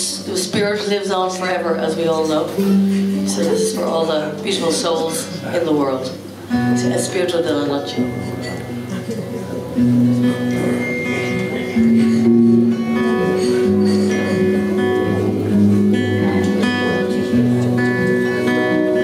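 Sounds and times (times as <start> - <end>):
strummed acoustic guitar: 0.0 - 19.0
electric guitar: 6.2 - 19.0.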